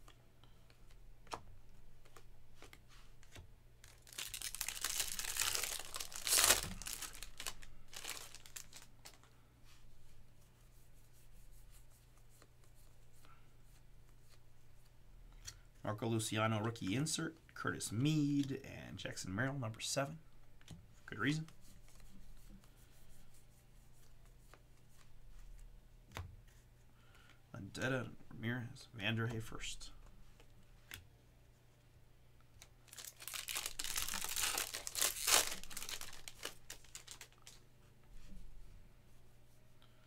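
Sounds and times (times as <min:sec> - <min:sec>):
cards being flipped by hand: 0:00.1 - 0:09.3
rustle of wrapper and cards: 0:02.0 - 0:09.8, 0:32.6 - 0:37.6
wrapper tearing and crinkling: 0:03.8 - 0:09.3, 0:32.8 - 0:37.6.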